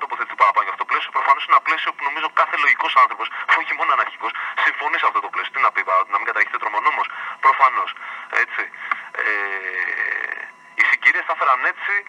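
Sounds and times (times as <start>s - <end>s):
man talking over telephone line: 0.0s - 12.0s.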